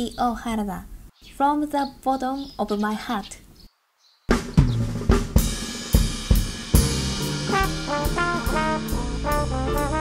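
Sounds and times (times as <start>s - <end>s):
woman speaking: 0.0s - 3.5s.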